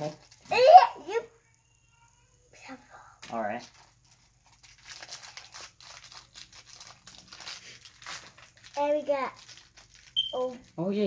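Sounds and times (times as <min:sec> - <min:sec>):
foil wrapper crinkling and tearing: 0:00.0 - 0:00.7, 0:03.2 - 0:11.0.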